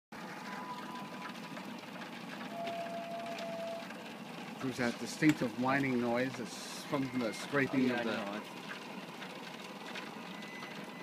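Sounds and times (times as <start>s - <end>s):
rotisserie scraping whine: 0.3s - 8.8s.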